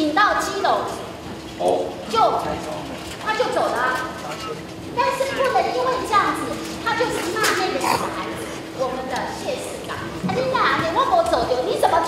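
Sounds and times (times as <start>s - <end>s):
woman speaking loudly: 0.0s - 1.0s, 2.1s - 2.5s, 3.2s - 4.1s, 5.0s - 12.0s.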